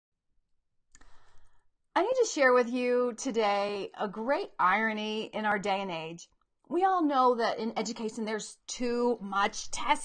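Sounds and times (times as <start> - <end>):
woman speaking: 2.0 - 10.0.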